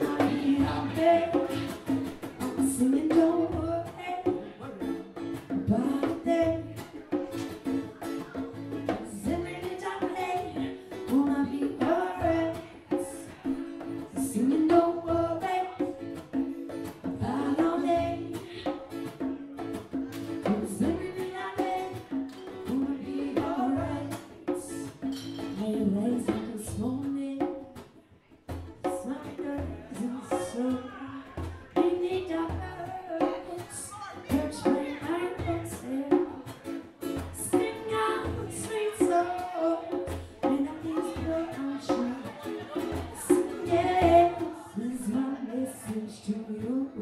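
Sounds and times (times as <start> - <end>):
person singing: 0.0 - 7.0, 17.0 - 19.1, 28.8 - 47.0
drums: 0.0 - 47.0
strummed acoustic guitar: 0.0 - 47.0.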